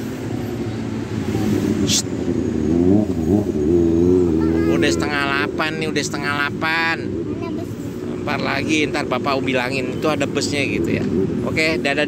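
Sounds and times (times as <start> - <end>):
engine accelerating: 0.0 - 12.0
street traffic engines: 0.0 - 12.0.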